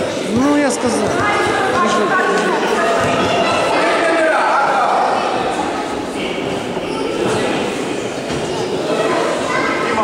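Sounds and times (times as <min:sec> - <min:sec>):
crowd murmur in echoing hall: 0:00.0 - 0:10.0.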